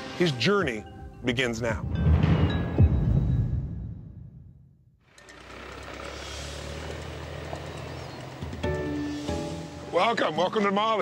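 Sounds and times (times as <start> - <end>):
low engine hum: 5.1 - 9.8.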